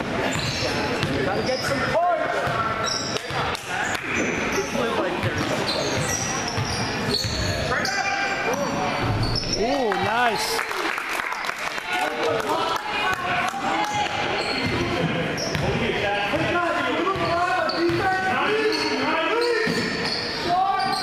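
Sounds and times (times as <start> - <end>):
echoing indistinct voices: 0.0 - 21.0
sneakers squeaking: 0.1 - 9.8, 13.9 - 21.0.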